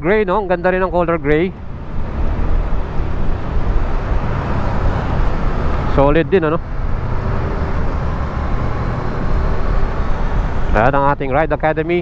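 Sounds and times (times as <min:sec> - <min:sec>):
road noise: 0:00.0 - 0:12.0.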